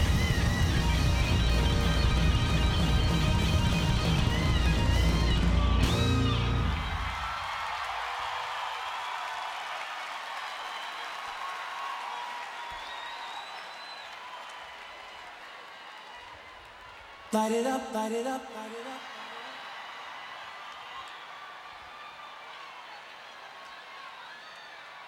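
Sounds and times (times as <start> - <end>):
live band music with heavy bass: 0.0 - 7.1
audience cheering and screaming: 0.0 - 25.0.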